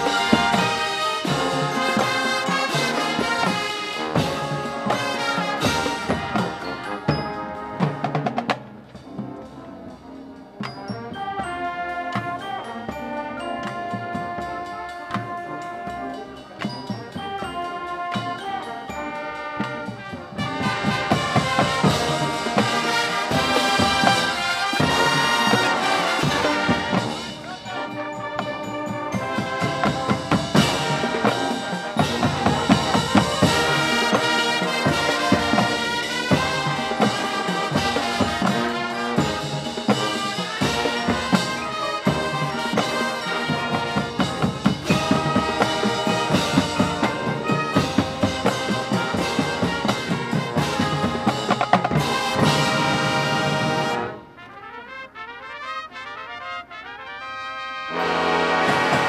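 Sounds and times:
brass instruments: 0.0 - 59.0
marching drums: 0.0 - 59.0
percussion: 0.0 - 59.0.

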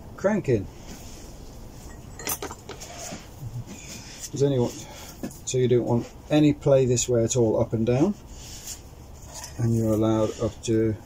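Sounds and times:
metal parts clinking: 1.9 - 2.9.

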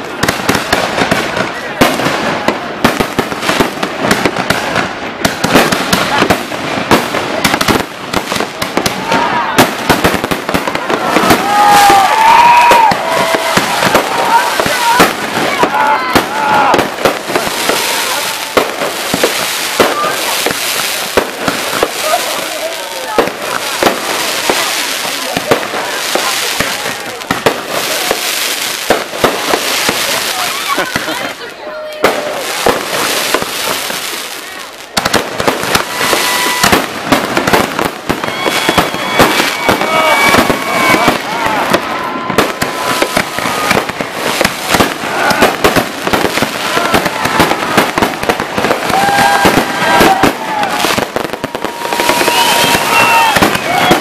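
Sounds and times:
fireworks bangs and crackling: 0.0 - 54.0.

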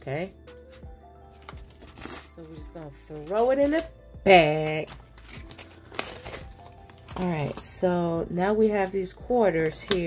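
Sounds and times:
coins clinking: 0.0 - 7.8
plastic crinkling: 4.8 - 7.8.

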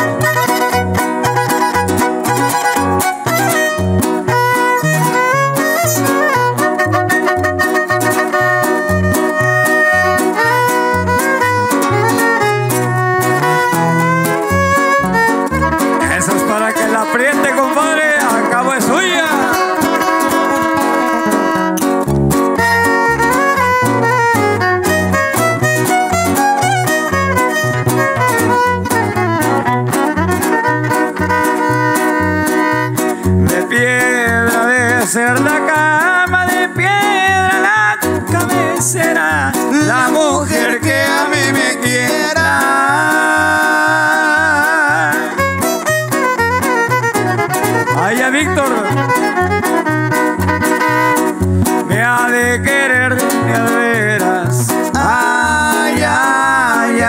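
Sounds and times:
strummed guitars: 0.0 - 57.0
violin melody: 0.0 - 57.0.

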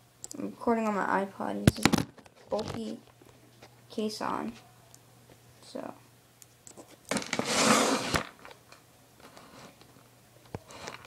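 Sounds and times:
scraping rustle of handling: 6.8 - 8.3.

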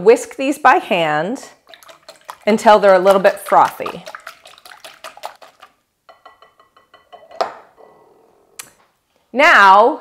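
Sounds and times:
light sloshing: 1.6 - 5.8
whisk clicking against glass bowl: 1.7 - 6.5.

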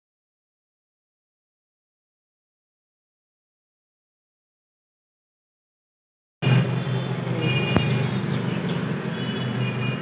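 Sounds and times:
traffic rumble: 6.4 - 10.0.

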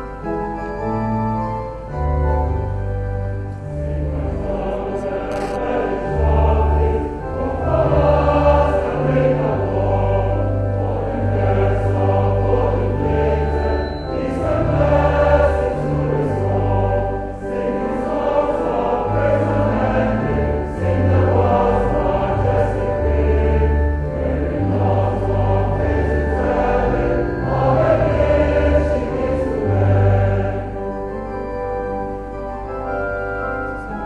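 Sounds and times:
organ accompaniment: 0.0 - 34.0
choir singing a hymn: 1.8 - 34.0.

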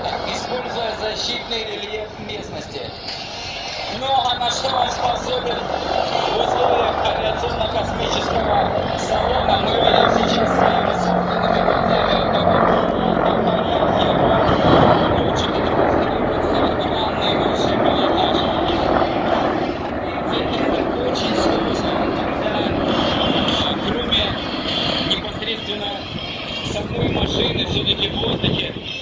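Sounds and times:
helicopter rotor and engine noise: 0.0 - 29.0.

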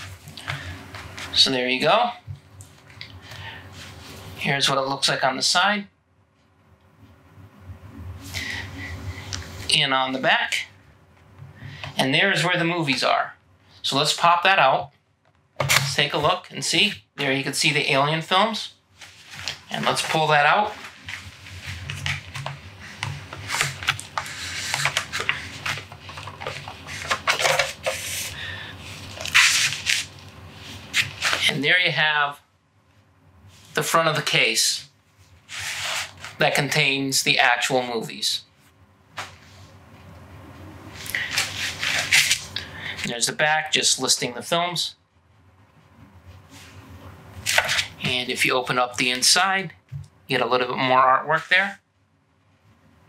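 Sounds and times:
plastic case scraping: 21.7 - 28.4.

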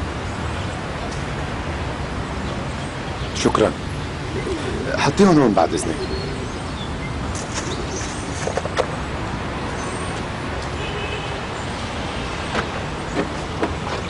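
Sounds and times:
distant road traffic: 0.0 - 14.0.

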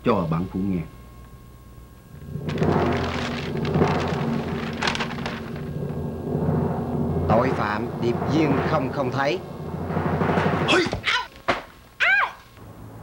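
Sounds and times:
crackling: 1.2 - 12.6
low thunder-like rumbling roll: 2.1 - 10.8.

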